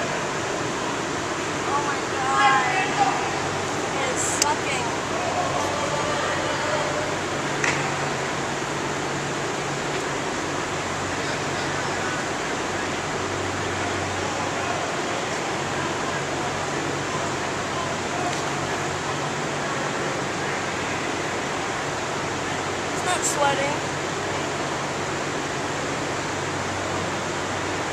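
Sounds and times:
distant echoing voices and shouts: 0.0s - 9.2s
ventilation fans humming: 0.0s - 27.9s.

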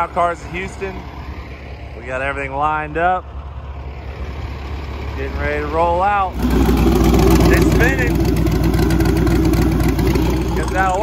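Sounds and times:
truck engine running: 0.0s - 11.0s
turbocharger spinning: 3.5s - 11.0s.

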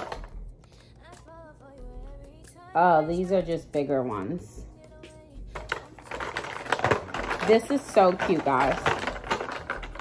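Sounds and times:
music with singing voice: 0.0s - 10.0s.

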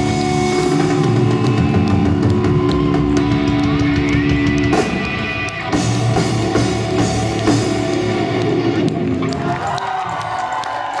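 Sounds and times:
audience cheering and applauding: 0.0s - 11.0s.

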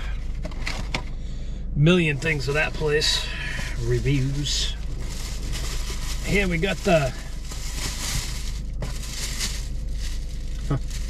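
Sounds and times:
paper bag and packaging rustling: 2.2s - 11.0s.

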